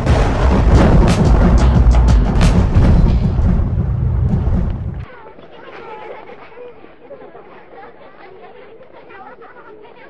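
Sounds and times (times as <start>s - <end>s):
loud deep rumble: 0.0s - 5.1s
background chatter of voices: 5.1s - 10.0s.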